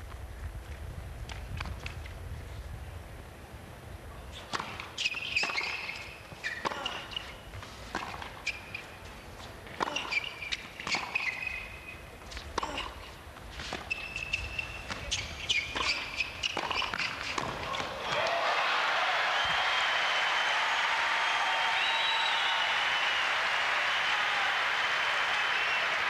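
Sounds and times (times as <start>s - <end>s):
shoes squeaking on court: 4.4s - 18.0s
tennis ball struck and bouncing: 7.9s - 8.6s, 9.8s - 11.5s, 14.8s - 18.3s.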